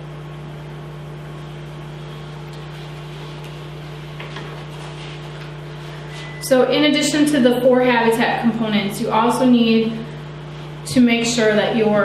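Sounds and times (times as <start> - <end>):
steady low hum with hiss: 0.0 - 12.0.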